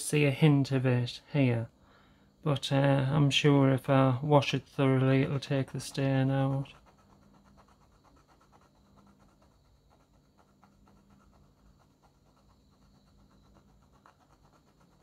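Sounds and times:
pencil scratching on palette: 5.2 - 15.0.

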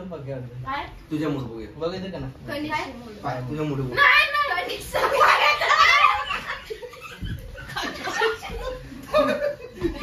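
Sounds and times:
excited voices: 4.0 - 10.0
young people laughing: 5.0 - 10.0.

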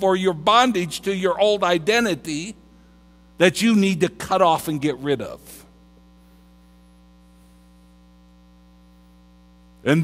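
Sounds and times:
man talking: 0.0 - 2.6, 3.4 - 5.7
electrical mains hum: 0.0 - 10.0.

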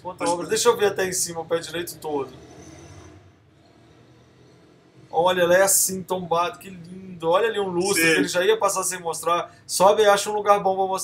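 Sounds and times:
low background hiss: 0.0 - 2.2, 5.1 - 11.0.

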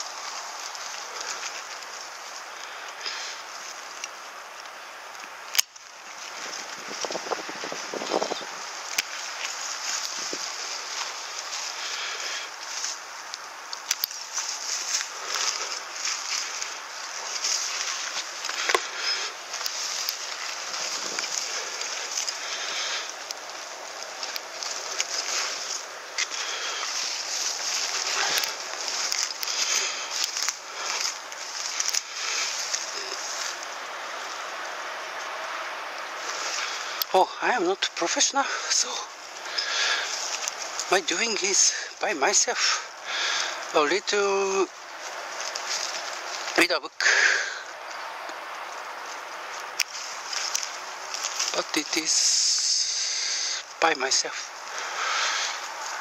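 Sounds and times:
branches snapping: 0.0 - 37.2, 37.8 - 56.0
pine branches rustling: 0.0 - 56.0.

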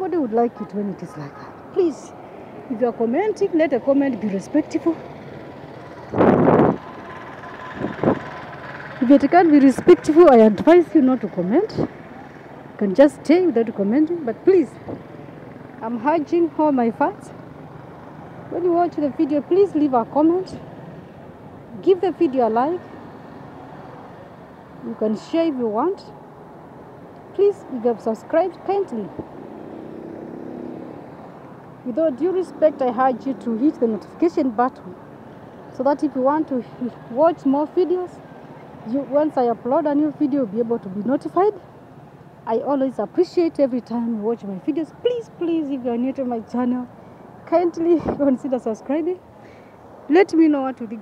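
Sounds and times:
roadside background noise: 0.0 - 51.0
vehicle engine passing: 0.2 - 42.2.

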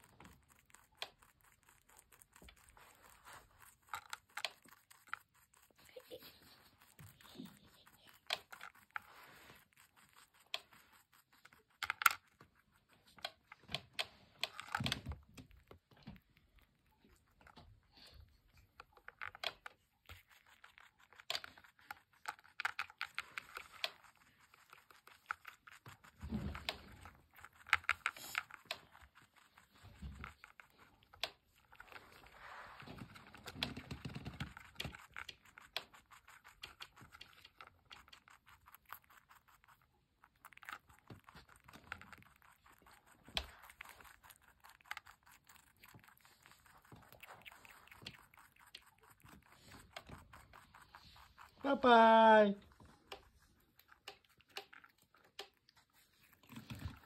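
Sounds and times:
rabbit chewing food: 0.0 - 57.0.

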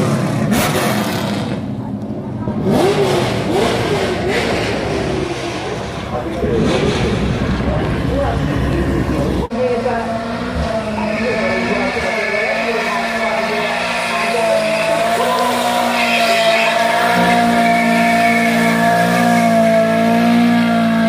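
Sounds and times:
car engine at high revs: 0.0 - 21.0
tyres squealing: 10.6 - 20.4.

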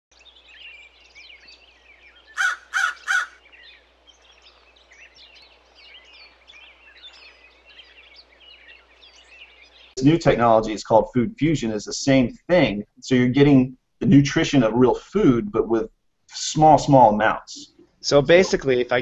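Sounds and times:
small birds chirping: 0.1 - 10.7
crow calling: 2.3 - 3.5.

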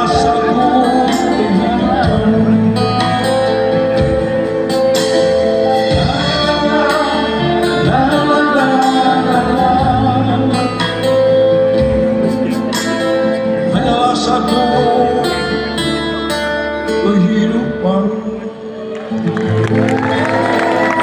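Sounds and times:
person singing: 0.0 - 4.6, 5.2 - 19.4
plucked guitar: 0.0 - 21.0.

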